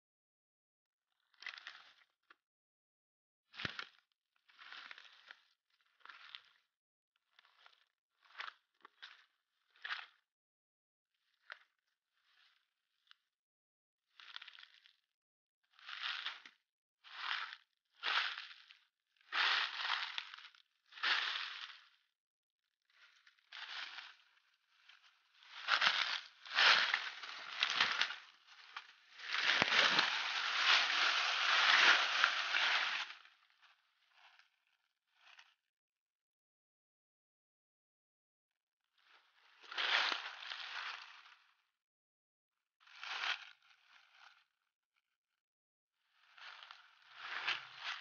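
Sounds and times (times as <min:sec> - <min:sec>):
dry leaves crunching: 0:25.5 - 0:33.2.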